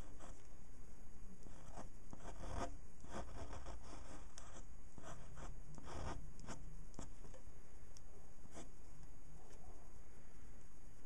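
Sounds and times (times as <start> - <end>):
pen scratching on paper: 0.0 - 0.4, 1.4 - 7.4, 8.4 - 8.8.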